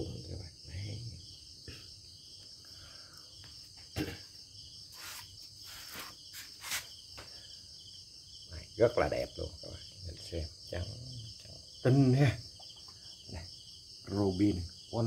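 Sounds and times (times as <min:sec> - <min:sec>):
high-pitched insect chirring: 0:04.7 - 0:07.2.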